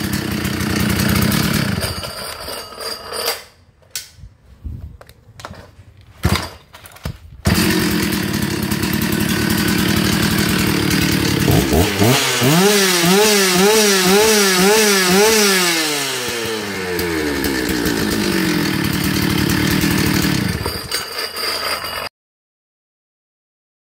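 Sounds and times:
chainsaw starting and revving: 0.0 - 2.2, 7.5 - 22.0.

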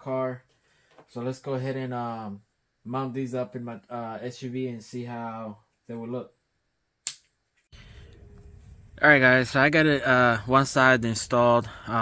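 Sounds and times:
sharp click: 7.0 - 7.3.

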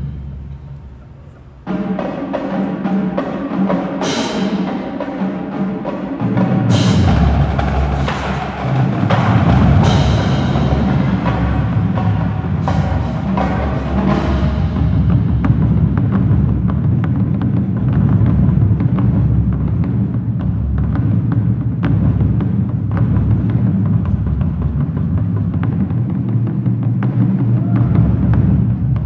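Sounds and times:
bass drums: 6.3 - 29.0.

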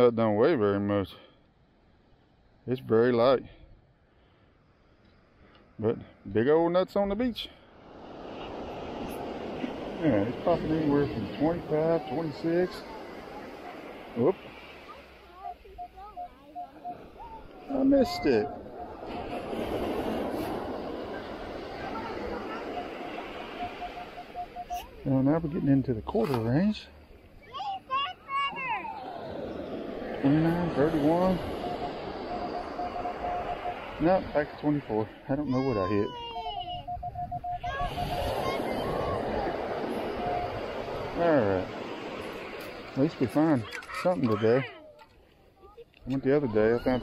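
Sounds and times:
metal detector beeping: 15.4 - 26.8, 30.2 - 34.8, 36.7 - 41.3
metal detector short beeps: 22.8 - 26.6.

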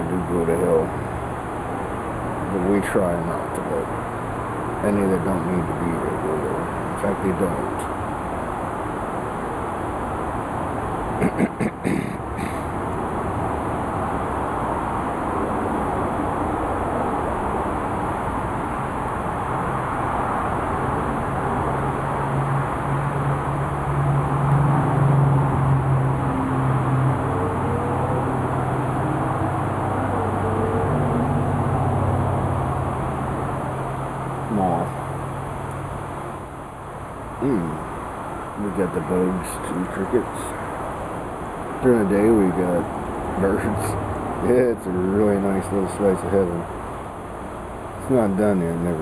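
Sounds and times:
outdoor background noise: 0.0 - 49.0
droning motor hum: 12.3 - 49.0.

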